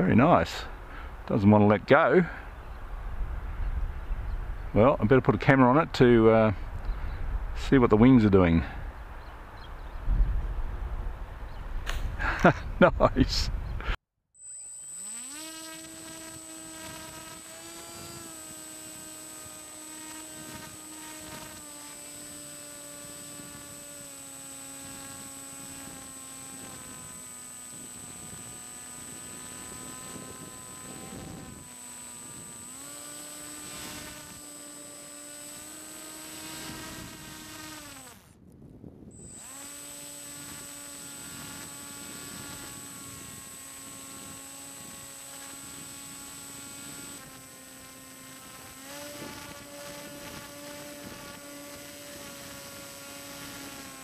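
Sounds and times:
high steady whine: 14.4 - 38.4, 39.1 - 54.0
electric motor and propeller: 14.4 - 54.0.

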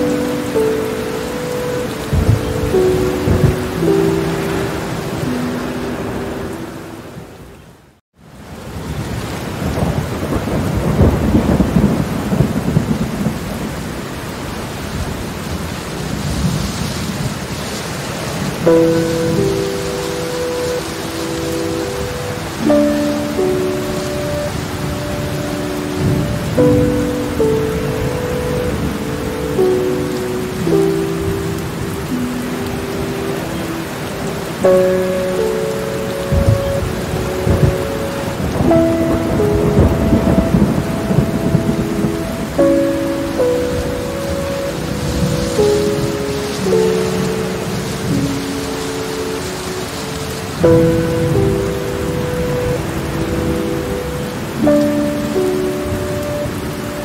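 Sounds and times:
thunder rumbling: 0.0 - 7.0, 8.8 - 57.0
soft sustained music chords: 0.0 - 7.5, 18.6 - 57.0
heavy rain: 0.0 - 57.0.

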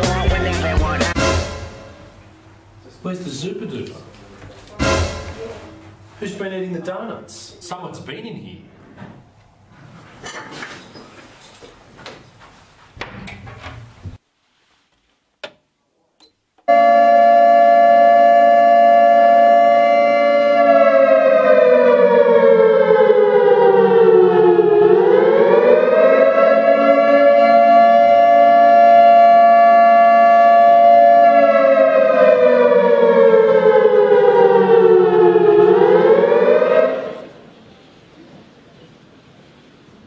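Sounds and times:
electronic alarm siren: 16.7 - 37.4.

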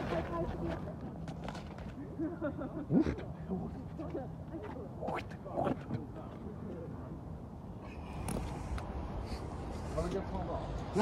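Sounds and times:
footsteps on paved path: 0.0 - 2.2, 3.5 - 6.8.

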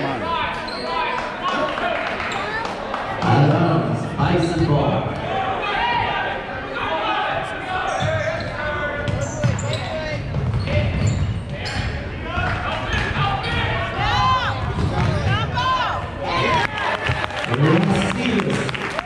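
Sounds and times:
voices talking and shouting: 0.0 - 18.6
basketball bouncing on gym floor: 9.0 - 13.7, 14.5 - 15.5.

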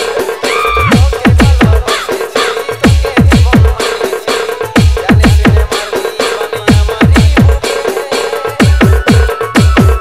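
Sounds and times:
pitch-dropping bass drum hits: 0.7 - 1.9.

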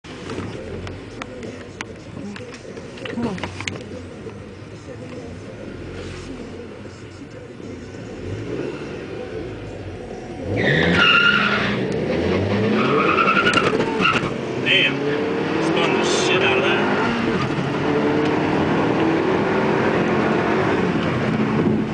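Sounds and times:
car engines idling: 0.0 - 21.9
engine revving: 8.0 - 21.9
tyres squealing: 10.4 - 14.4.

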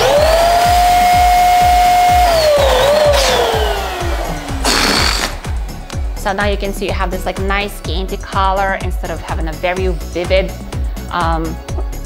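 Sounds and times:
electric balloon pump whine: 0.0 - 6.1
background music beat: 0.0 - 12.0.

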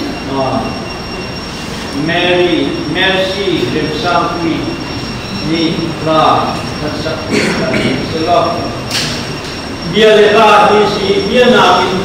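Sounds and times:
thin high whine: 0.0 - 12.0
man speaking: 1.9 - 8.9, 9.8 - 12.0.

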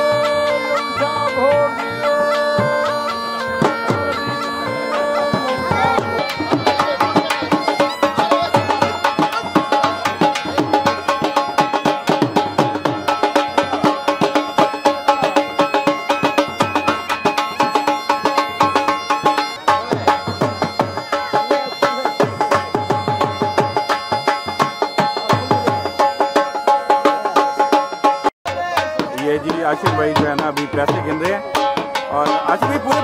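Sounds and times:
bagpipe playing with drones: 0.0 - 28.3, 29.9 - 33.0
dhol drum beating: 0.0 - 33.0.

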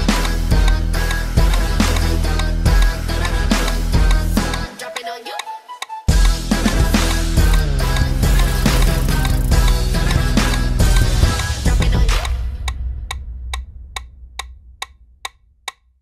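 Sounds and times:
metronome clicking: 4.8 - 6.0, 13.1 - 15.9.

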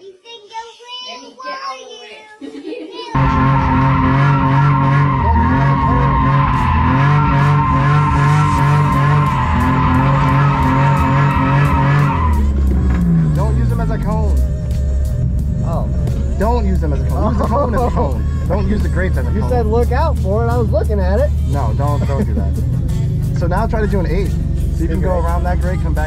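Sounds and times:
tyres squealing: 3.2 - 14.1
car engine revving: 3.2 - 26.0.

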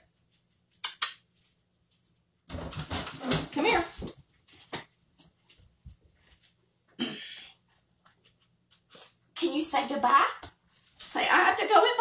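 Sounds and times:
sharp clicks: 0.7 - 1.3.

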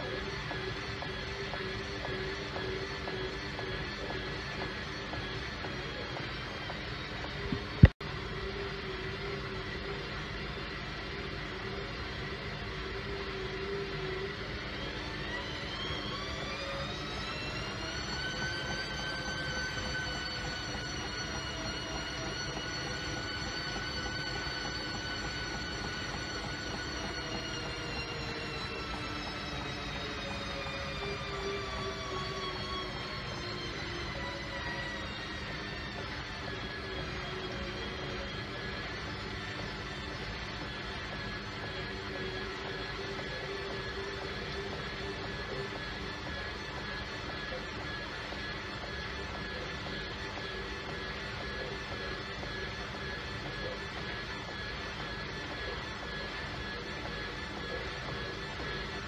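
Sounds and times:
washing machine motor whine: 0.0 - 59.0.

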